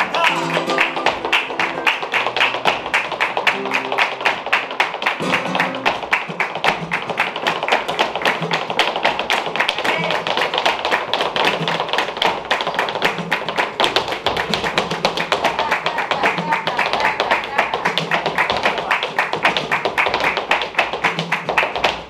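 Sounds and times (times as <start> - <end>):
hand-clapping: 0.0 - 22.0
heeled shoes striking wooden stage: 0.0 - 22.0.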